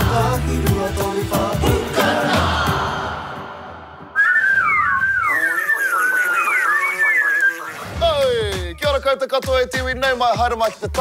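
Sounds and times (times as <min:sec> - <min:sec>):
theme music: 0:00.0 - 0:05.0
person whistling warbling notes: 0:04.2 - 0:08.6.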